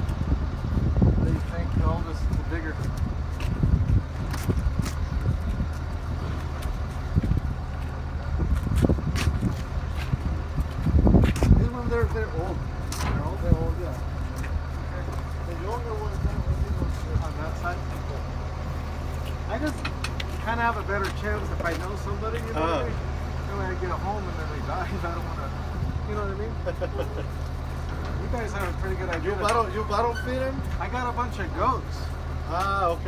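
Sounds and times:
low engine hum: 0.0 - 33.0
distant indistinct voices: 11.6 - 33.0.

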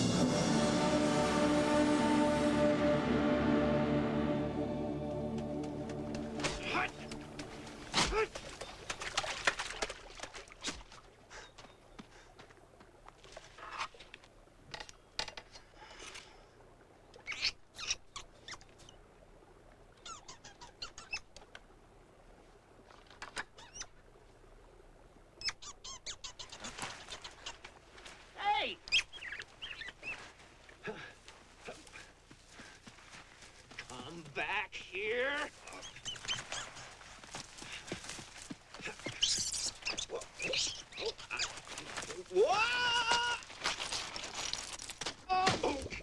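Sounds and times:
splashing through shallow water: 5.5 - 14.3, 35.5 - 46.0
ferrets squeaking and chirping: 28.9 - 30.2, 35.7 - 36.9, 39.0 - 41.6.

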